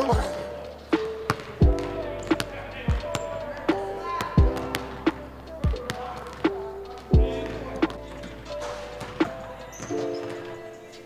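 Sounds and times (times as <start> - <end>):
background music: 0.0 - 11.0
basketball bouncing on gym floor: 1.3 - 3.4, 4.2 - 6.5, 9.0 - 10.6.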